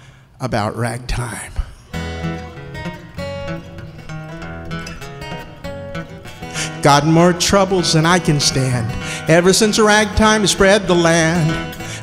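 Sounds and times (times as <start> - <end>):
acoustic guitar playing: 1.7 - 12.0.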